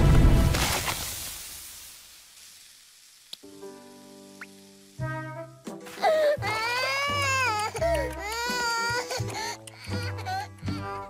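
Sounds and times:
background music: 0:03.4 - 0:11.0.

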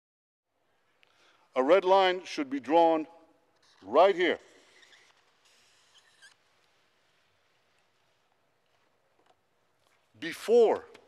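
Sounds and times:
marker squeaking on cardboard: 0:03.6 - 0:06.5.

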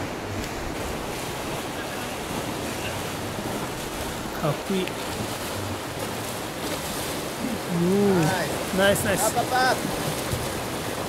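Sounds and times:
river rapids rushing: 0:00.0 - 0:11.0.

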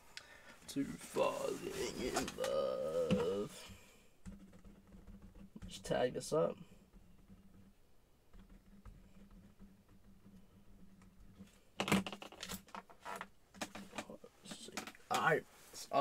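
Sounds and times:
person speaking: 0:00.6 - 0:03.8, 0:05.6 - 0:06.7, 0:13.9 - 0:16.0.

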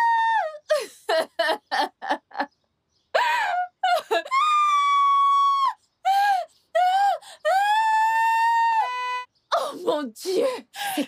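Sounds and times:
woman screaming and wailing: 0:00.0 - 0:00.9, 0:03.2 - 0:09.3.

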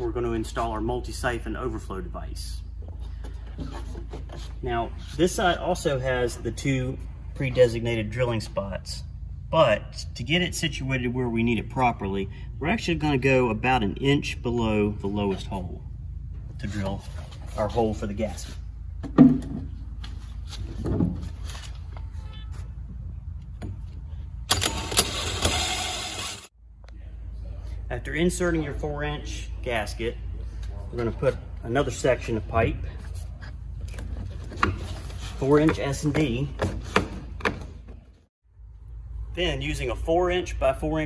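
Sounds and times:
drill hole saw cutting plastic: 0:24.5 - 0:26.5.

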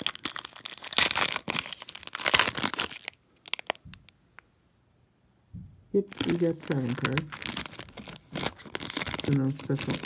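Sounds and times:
foil wrapper tearing and crinkling: 0:00.0 - 0:03.8, 0:06.1 - 0:10.0.

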